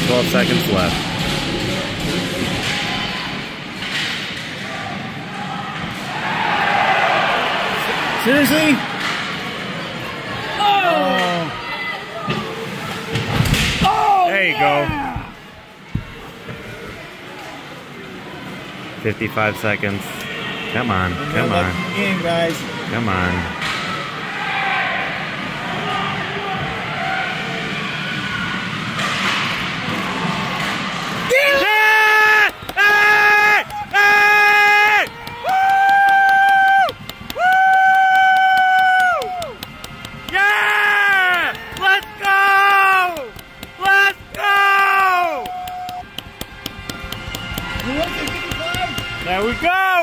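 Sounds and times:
arena crowd noise: 0.0s - 50.0s.

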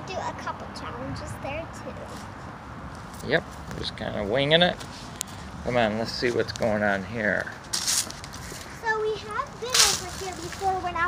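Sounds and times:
high-pitched voice: 8.8s - 11.0s.

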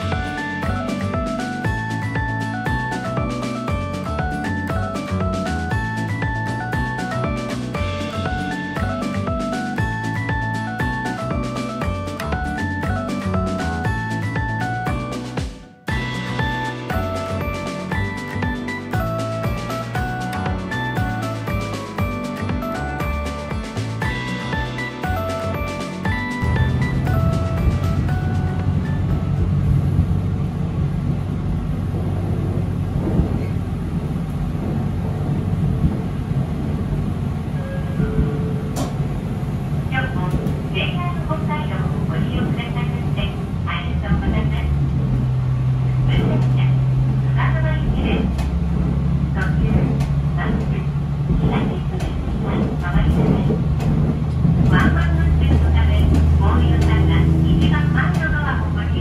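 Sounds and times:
railcar diesel engine drone: 0.0s - 59.0s.

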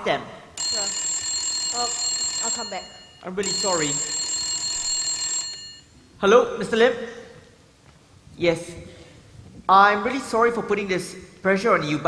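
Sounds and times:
desk telephone ringing: 0.6s - 5.9s.

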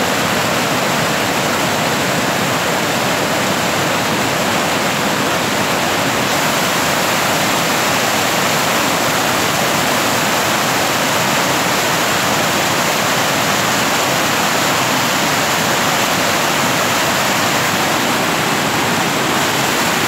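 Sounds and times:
water rushing in rapids: 0.0s - 20.0s.

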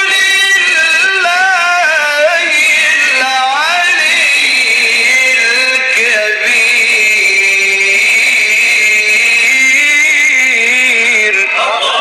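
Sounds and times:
man reciting melodically: 0.0s - 12.0s.

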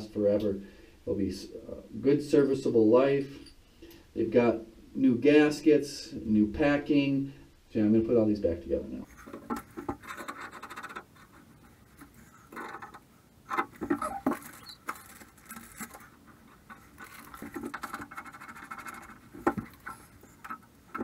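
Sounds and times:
metal parts scratching and clicking: 9.1s - 21.0s.

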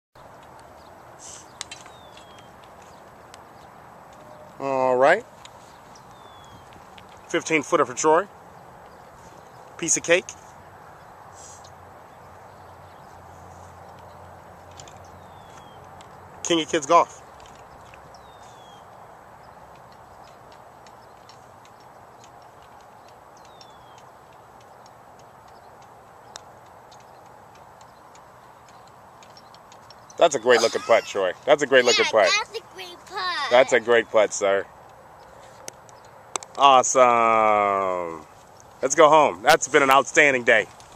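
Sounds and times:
faint ticks: 17.4s - 30.2s.

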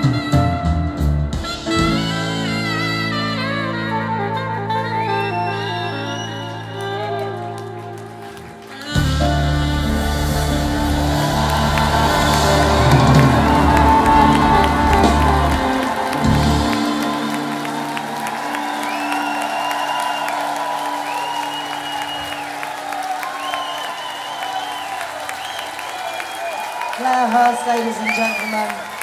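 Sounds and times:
live band playing: 0.0s - 29.0s
audience applause and cheering: 3.8s - 29.0s
long high whistles: 5.3s - 6.8s, 18.6s - 27.0s.

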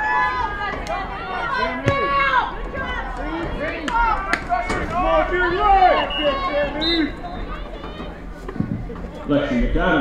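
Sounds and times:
voices calling and shouting: 0.0s - 10.0s.

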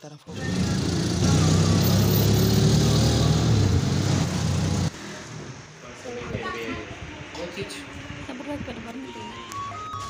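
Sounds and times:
auto-rickshaw engine running: 0.3s - 4.9s.

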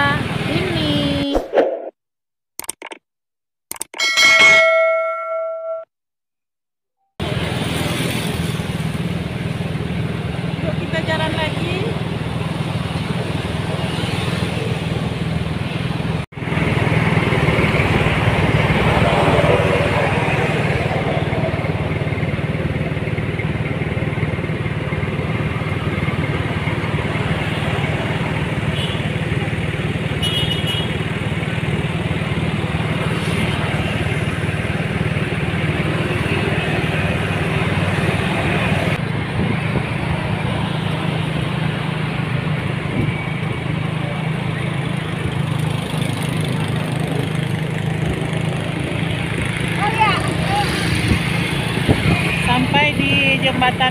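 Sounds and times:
road noise: 0.0s - 1.9s, 7.2s - 53.9s
traffic passing: 7.2s - 53.9s
motorcycle engine running: 21.0s - 38.5s, 43.6s - 53.9s.

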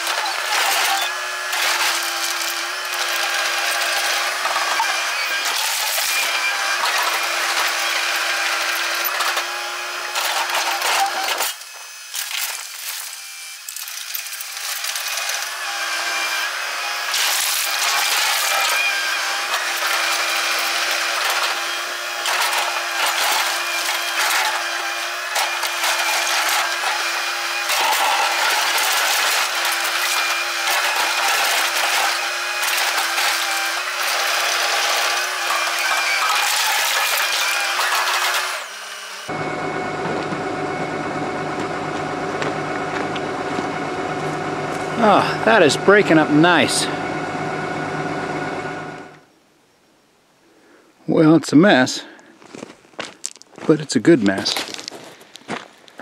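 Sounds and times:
steady machine tone: 39.3s - 49.2s
rock clattering and sliding: 52.4s - 56.0s.

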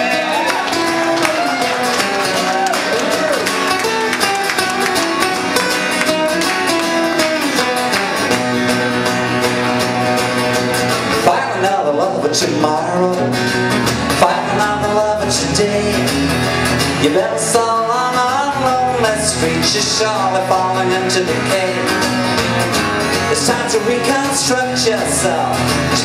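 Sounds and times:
acoustic guitar lead lines: 0.0s - 26.0s
acoustic guitar strummed: 0.0s - 26.0s.

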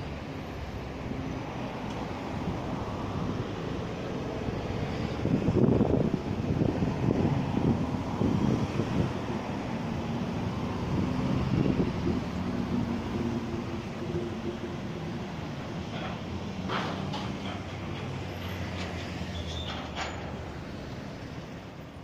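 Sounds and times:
construction site noise: 0.0s - 22.0s
wind buffeting microphone: 4.2s - 18.4s.

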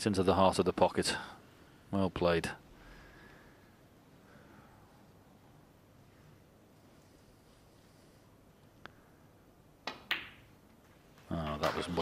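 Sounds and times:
snooker balls clacking: 9.9s - 10.6s.

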